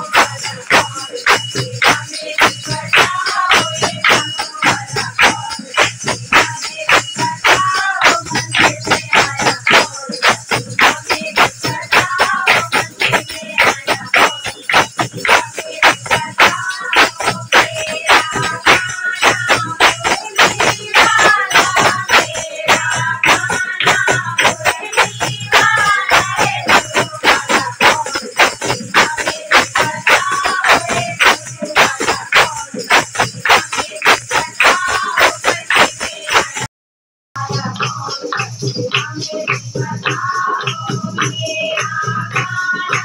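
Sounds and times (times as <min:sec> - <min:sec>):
rhythmic hand-clapping: 0:00.0 - 0:36.7, 0:37.4 - 0:43.0
women singing in unison: 0:00.0 - 0:36.7, 0:37.4 - 0:43.0.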